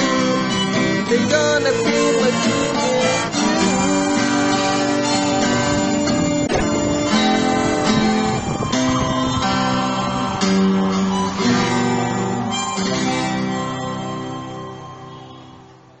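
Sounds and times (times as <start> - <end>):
acoustic guitar strumming chords: 0.0 - 16.0.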